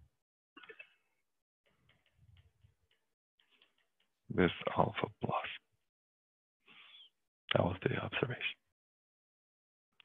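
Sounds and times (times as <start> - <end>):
stylus tapping tablet screen: 1.7 - 4.3.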